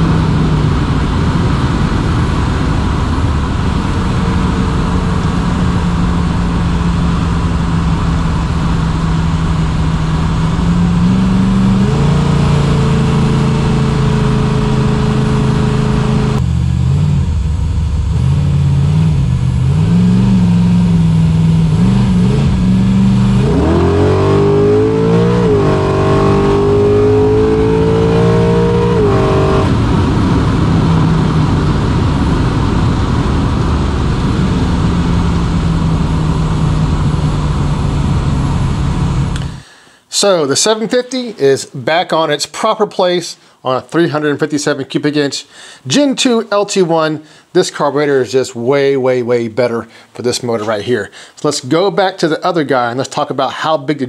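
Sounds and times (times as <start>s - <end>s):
engine idling and revving: 0.0s - 39.7s.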